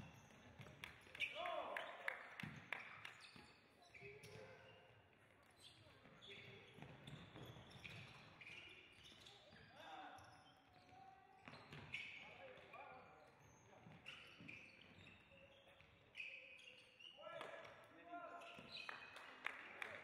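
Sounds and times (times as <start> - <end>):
shoes squeaking on court floor: 0.0 - 17.5, 18.3 - 19.2.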